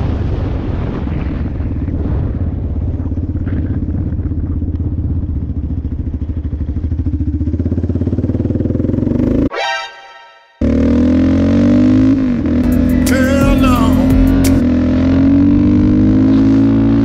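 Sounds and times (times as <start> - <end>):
quad bike engine revving: 6.8 - 9.5, 10.6 - 17.0.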